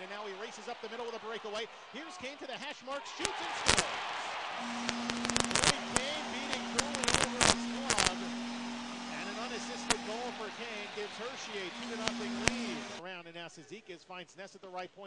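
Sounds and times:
crowd cheering: 0.0 - 13.0
sharp cracks: 4.6 - 10.8, 11.4 - 13.0
arena goal horn: 4.6 - 13.0.

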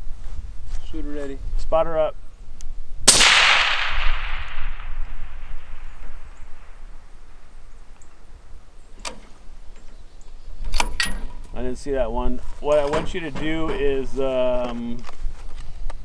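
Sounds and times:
rifle shot echoing: 3.0 - 8.4.

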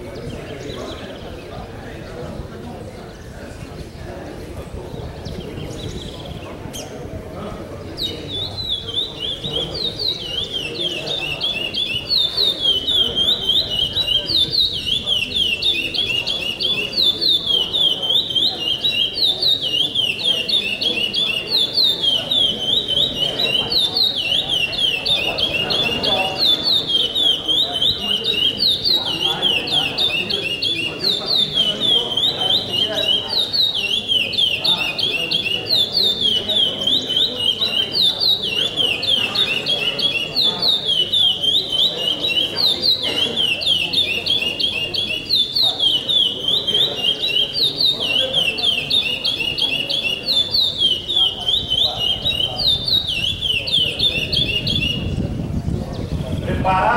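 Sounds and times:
songbird singing: 0.0 - 56.9.

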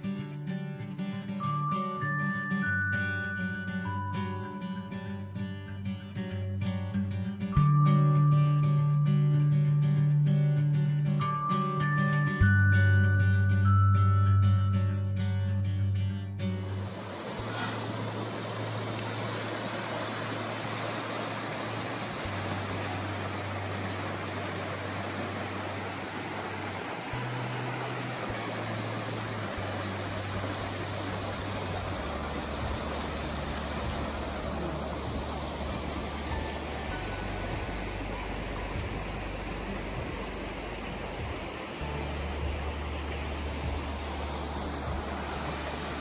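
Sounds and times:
soft background music: 0.0 - 46.0
river rushing over rocks: 16.6 - 46.0.

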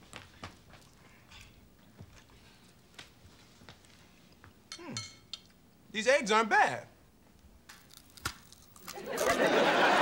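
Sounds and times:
cutlery clinking on a plate: 4.7 - 5.5.

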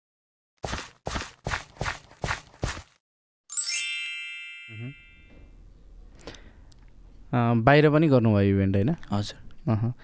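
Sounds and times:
bright chime ringing: 3.5 - 5.6.

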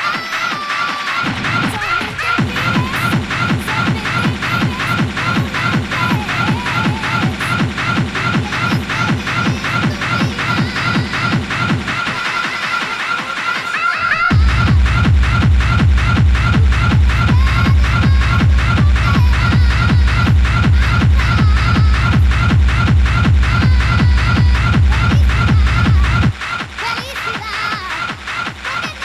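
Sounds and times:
hard techno music: 0.0 - 29.0.

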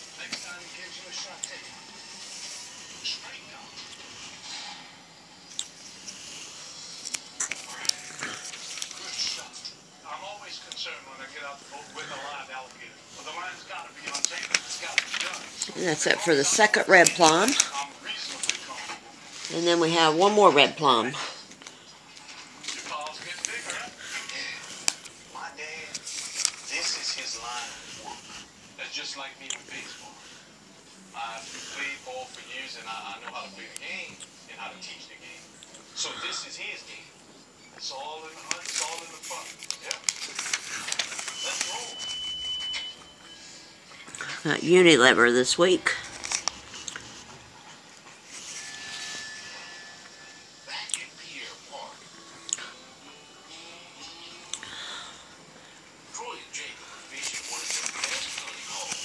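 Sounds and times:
newspaper pages rustling: 0.0 - 4.7, 5.8 - 9.8, 11.2 - 30.4, 37.9 - 43.0, 44.0 - 49.2, 56.2 - 59.0
faint tv speech: 0.0 - 59.0
faint voices: 0.0 - 59.0.

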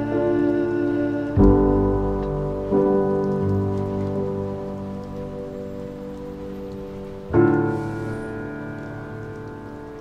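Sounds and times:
piano chord ringing: 0.0 - 6.4.

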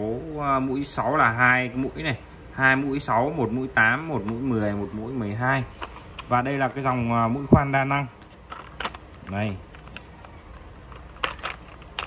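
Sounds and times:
faint background hum: 0.0 - 12.0.

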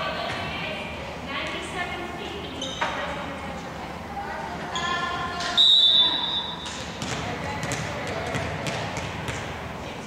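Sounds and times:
referee's whistle blast: 5.6 - 6.6.

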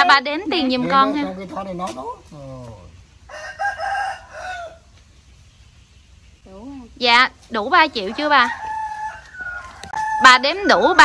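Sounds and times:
rooster crowing: 3.2 - 4.9, 7.9 - 11.0.

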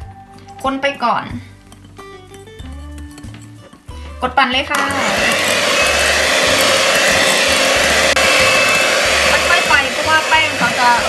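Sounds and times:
electric hand mixer whisking batter: 4.7 - 11.0.

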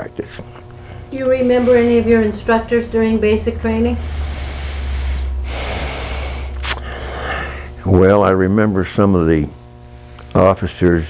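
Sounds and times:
steady low hum: 0.0 - 11.0
person drawing long breath: 4.0 - 7.8.

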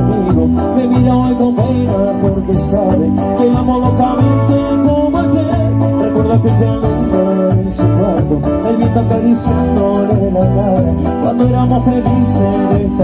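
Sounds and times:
live latin band playing: 0.0 - 13.0.

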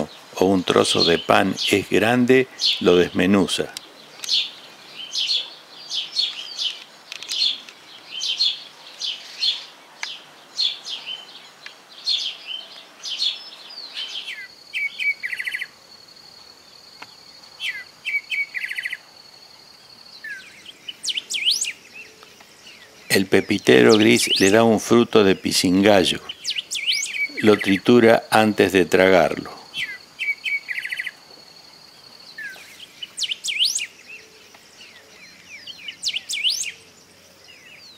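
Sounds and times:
sparrows chirping: 0.0 - 37.9.

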